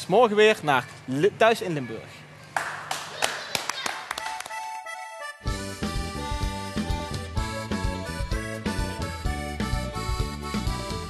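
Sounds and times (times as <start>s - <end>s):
people clapping: 2.5s - 5.1s.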